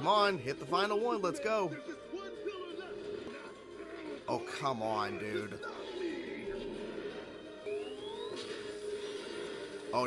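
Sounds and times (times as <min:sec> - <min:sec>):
cartoon music with held tone: 0:00.0 - 0:10.0.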